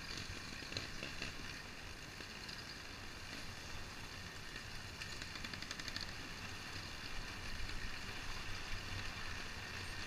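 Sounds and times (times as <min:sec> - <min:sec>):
bike tyres rolling on stony track: 0:00.0 - 0:10.0
wind: 0:00.0 - 0:10.0
rapid rattle: 0:05.0 - 0:06.2.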